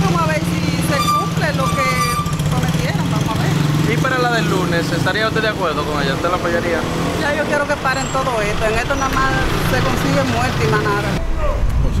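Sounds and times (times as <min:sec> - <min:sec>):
motorcycle engine idling: 0:00.0 - 0:03.7.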